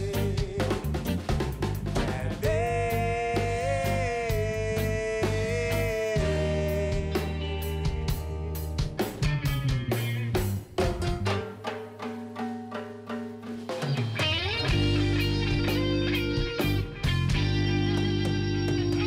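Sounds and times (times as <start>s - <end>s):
reggae band playing: 0.0s - 19.0s.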